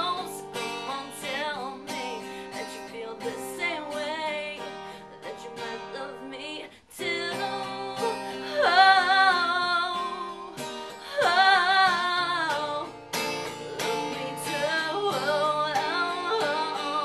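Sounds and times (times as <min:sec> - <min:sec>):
strummed acoustic guitar: 0:00.0 - 0:17.0.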